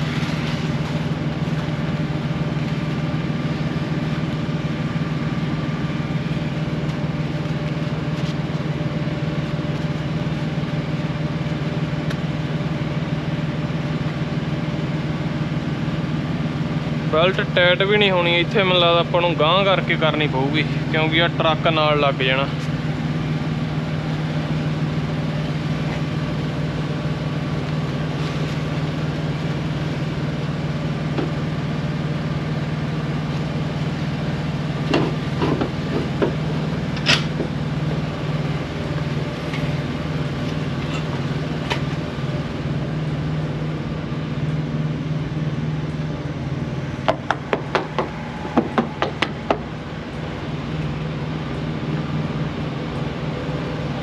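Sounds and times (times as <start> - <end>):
diesel truck engine idling: 0.0 - 54.0.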